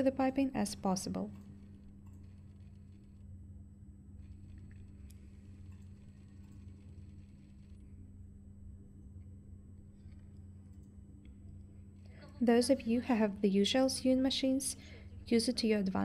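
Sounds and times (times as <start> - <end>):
faint sewing machine motor hum: 0.0 - 16.0.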